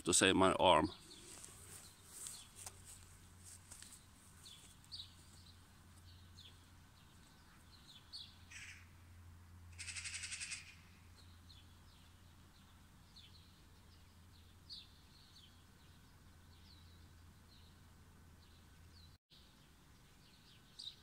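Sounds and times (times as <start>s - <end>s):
small birds chirping: 0.0s - 9.0s, 9.7s - 21.0s
harsh rattling bird call: 7.5s - 9.0s, 9.7s - 11.1s.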